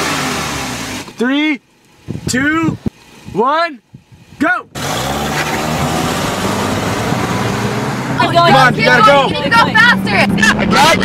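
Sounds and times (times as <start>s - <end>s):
car accelerating hard: 0.0s - 1.1s, 4.7s - 11.0s.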